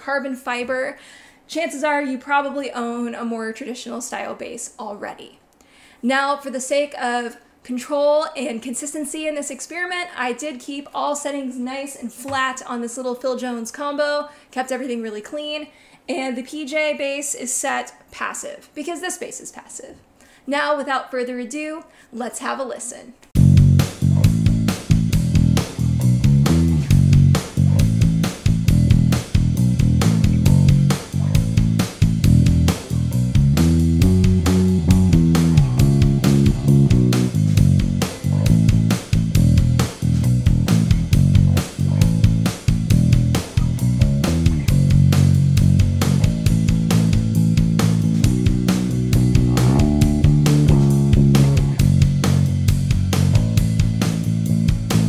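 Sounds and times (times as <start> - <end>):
electric bass plucked notes: 23.4 - 55.0.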